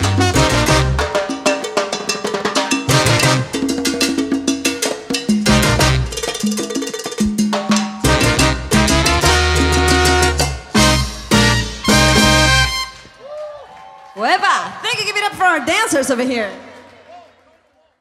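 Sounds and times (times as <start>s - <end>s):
latin percussion: 0.0s - 13.1s
live salsa band playing: 0.0s - 13.1s.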